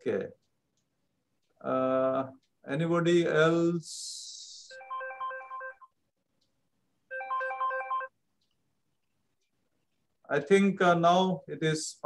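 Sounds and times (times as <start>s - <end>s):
electronic phone ringtone: 4.7s - 6.0s, 7.1s - 8.2s.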